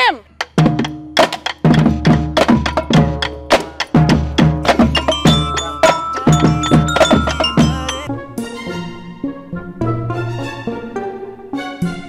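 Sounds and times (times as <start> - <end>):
sticks striking buckets and pans: 0.4 - 8.1.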